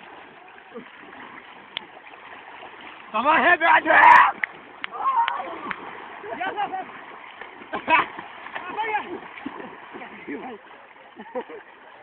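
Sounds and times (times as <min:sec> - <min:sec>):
water splashing: 0:00.0 - 0:12.0
people shouting: 0:03.6 - 0:06.9.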